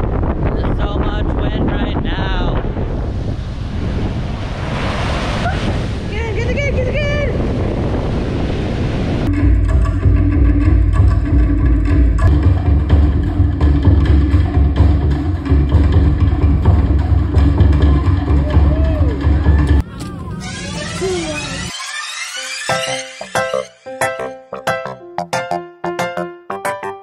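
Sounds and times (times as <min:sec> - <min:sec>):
wind buffeting the microphone: 0:00.0 - 0:09.3
surf washing up a beach: 0:02.2 - 0:09.3
music with heavy bass and drums: 0:09.3 - 0:19.8.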